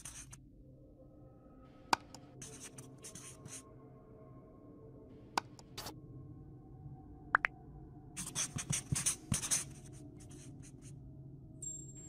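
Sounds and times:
scratchy pen strokes: 0:00.0 - 0:00.4, 0:02.4 - 0:03.6, 0:08.2 - 0:10.9
faint background music: 0:00.0 - 0:12.0.

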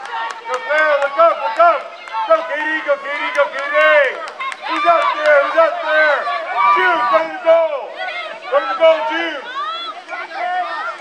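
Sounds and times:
high-pitched voices shouting: 0:00.4 - 0:11.0.

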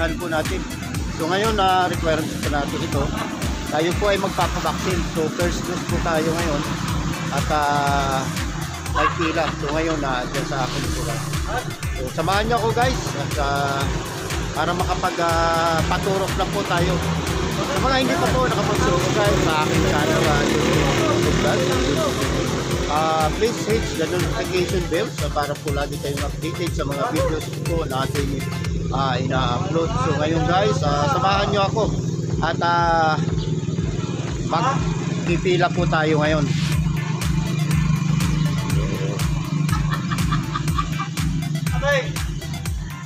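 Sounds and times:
background music with beat and bass: 0:00.0 - 0:43.0.

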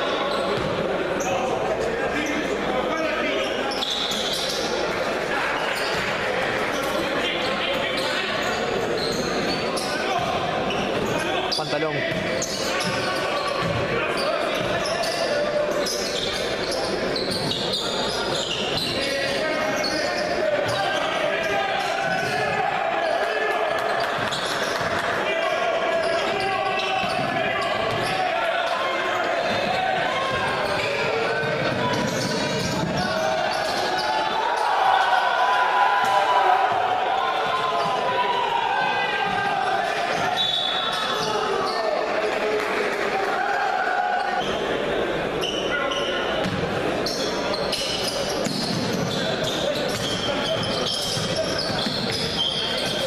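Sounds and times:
crowd and player voices: 0:00.0 - 0:53.0
shoes squeaking: 0:03.4 - 0:04.8, 0:06.7 - 0:22.3, 0:45.4 - 0:53.0.

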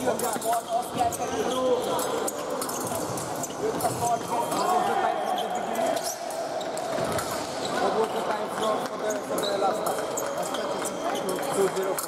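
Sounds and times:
murmur of voices: 0:00.0 - 0:12.0
shoes squeaking: 0:00.0 - 0:12.0.

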